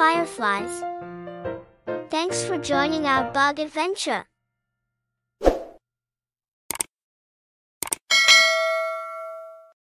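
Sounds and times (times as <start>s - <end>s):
sharp clicks: 6.7s - 6.9s, 7.8s - 8.0s
notification bell ding: 8.1s - 9.8s.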